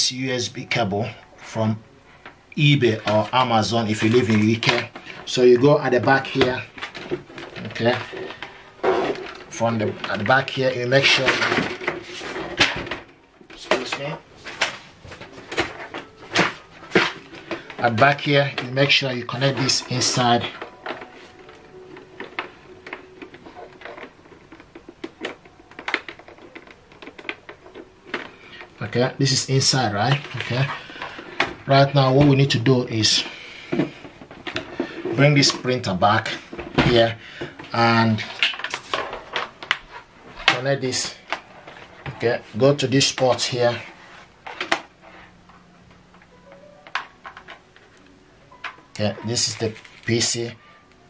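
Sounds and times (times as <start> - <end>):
hands handling plastic casing: 2.2 - 50.6.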